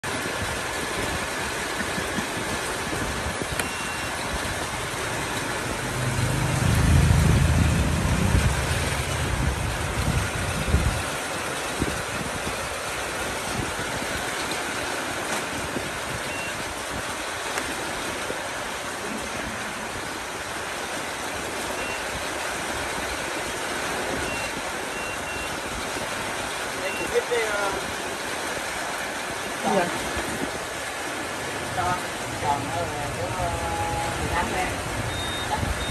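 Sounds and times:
faint short high beeps: 3.6 - 4.1, 35.1 - 35.9
deep low rumble: 5.7 - 11.0.

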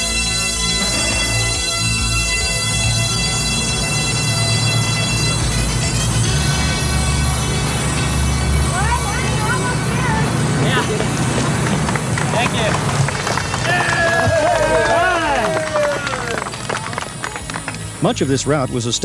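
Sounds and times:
background music: 0.0 - 19.0
people calling and shouting: 4.6 - 19.0.

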